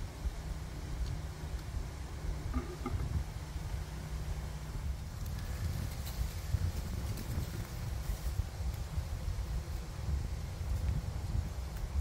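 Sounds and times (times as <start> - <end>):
honeybees buzzing: 0.0 - 12.0
wind buffeting microphone: 0.0 - 12.0.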